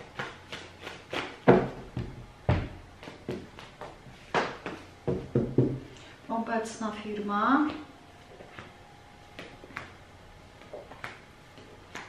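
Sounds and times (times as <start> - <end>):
cards shuffling: 10.6 - 12.0.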